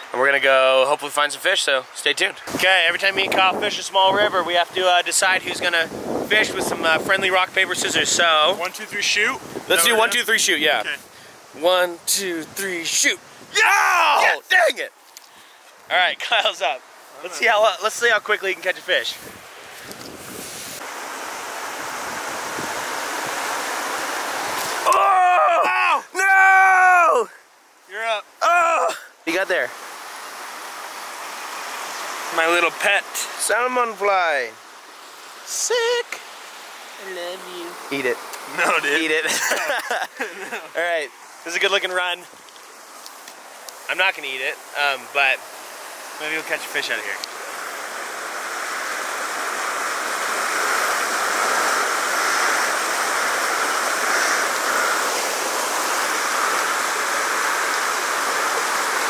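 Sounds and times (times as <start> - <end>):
river rushing over rocks: 15.9 - 59.0.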